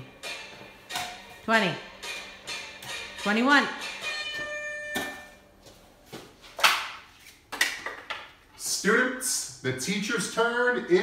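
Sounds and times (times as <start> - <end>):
timer alarm tone: 3.8 - 5.5.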